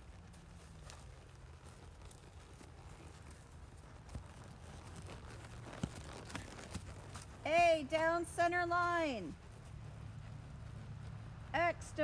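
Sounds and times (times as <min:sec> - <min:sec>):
hoofbeats on dirt: 0:00.0 - 0:12.0
low steady rumble: 0:00.0 - 0:12.0.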